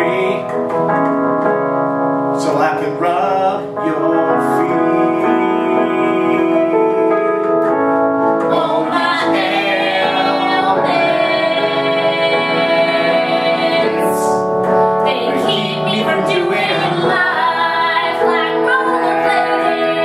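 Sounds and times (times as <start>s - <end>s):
electric keyboard: 0.0s - 20.0s
woman singing: 8.5s - 14.2s, 15.1s - 20.0s.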